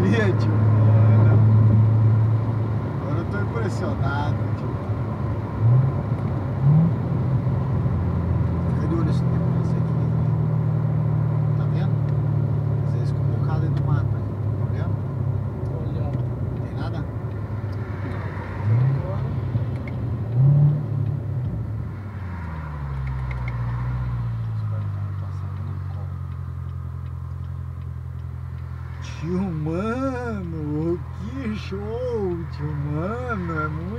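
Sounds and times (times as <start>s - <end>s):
car engine from inside cabin: 0.0s - 33.9s.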